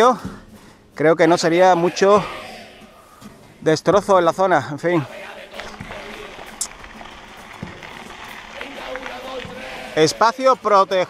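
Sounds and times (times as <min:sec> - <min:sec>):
bike tyres rolling on grit: 0:05.5 - 0:10.1
bike rattling: 0:05.6 - 0:10.1.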